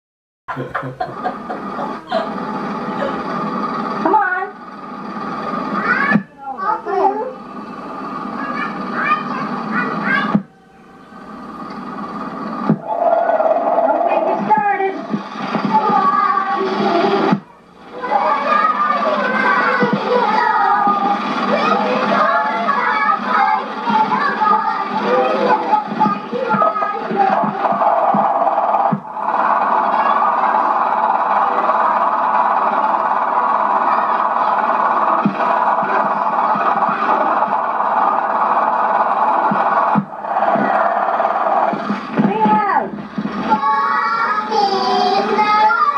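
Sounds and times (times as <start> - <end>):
children's voices through tv speaker: 1.6 - 45.9
loud steady hiss: 13.5 - 42.2.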